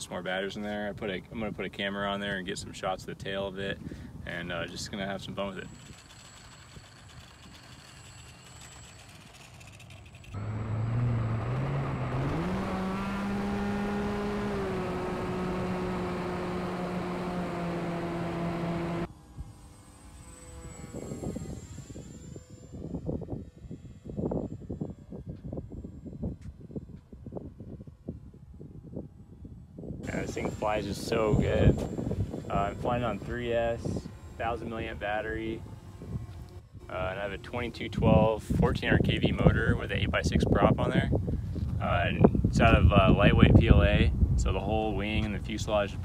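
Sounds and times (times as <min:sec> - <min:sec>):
faint motor whine: 0:00.1 - 0:46.0
electric motor and propeller spinning: 0:04.2 - 0:46.0
wind buffeting microphone: 0:20.8 - 0:46.0.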